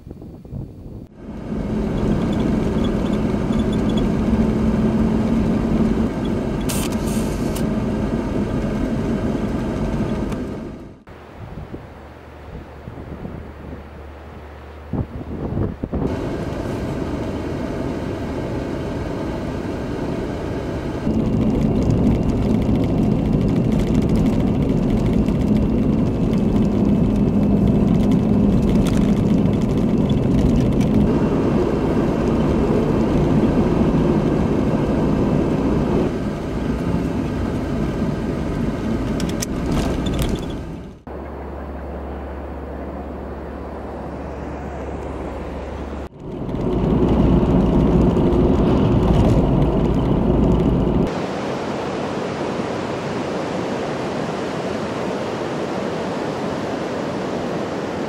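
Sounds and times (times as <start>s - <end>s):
car engine and road noise: 0.0s - 58.0s
ocean surf: 51.0s - 58.0s.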